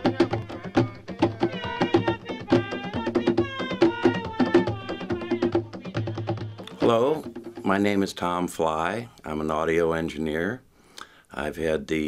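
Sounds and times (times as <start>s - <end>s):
quick percussion strokes: 0.0s - 7.9s.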